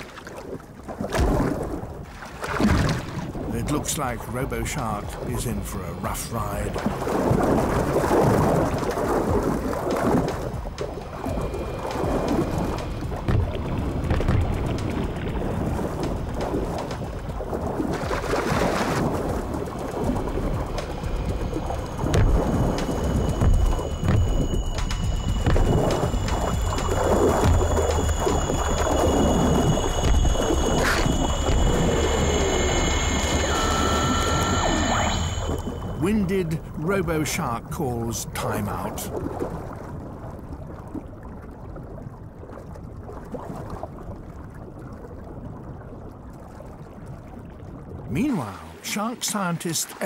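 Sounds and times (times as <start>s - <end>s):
underwater rumbling wash: 0.0s - 48.9s
scattered underwater knocks: 6.7s - 33.3s
steady high tones: 19.3s - 39.1s.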